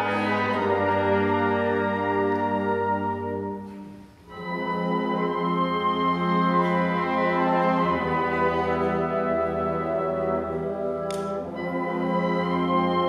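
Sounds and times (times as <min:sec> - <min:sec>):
wind band playing chords: 0:00.0 - 0:13.0.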